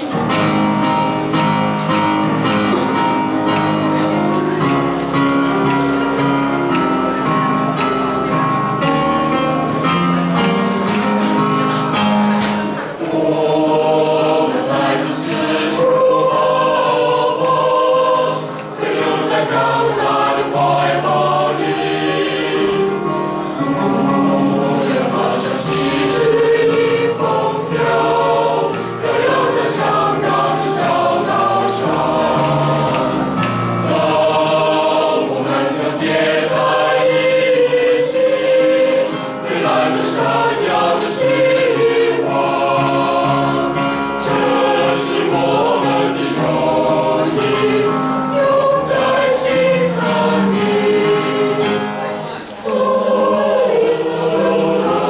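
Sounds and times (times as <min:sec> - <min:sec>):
choir singing in parts: 0:00.0 - 0:55.0.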